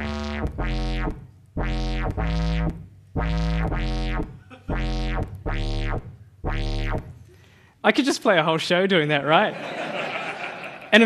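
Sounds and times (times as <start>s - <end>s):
low square-wave synth notes: 0.0s - 7.3s.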